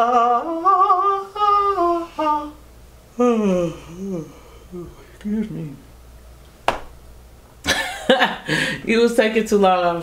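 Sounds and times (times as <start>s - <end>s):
person humming: 0.0s - 5.8s.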